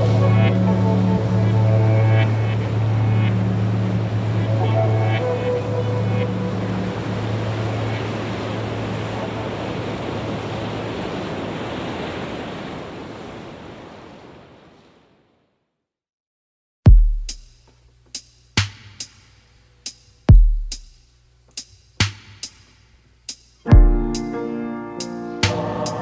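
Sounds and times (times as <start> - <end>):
low sustained drone: 0.0 - 8.9
soft notes: 0.0 - 9.4
surf-like noise: 0.0 - 15.4, 24.2 - 26.0.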